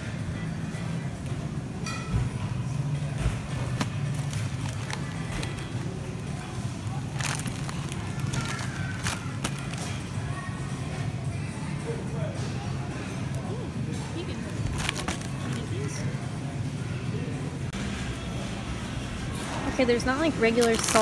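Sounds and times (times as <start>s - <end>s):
faint background music: 0.0s - 21.0s
freezer low hum: 0.0s - 21.0s.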